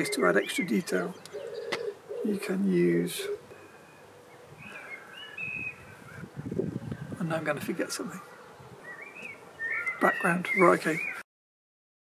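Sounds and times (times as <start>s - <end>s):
small bird chirping: 0.0s - 2.6s, 8.2s - 11.2s.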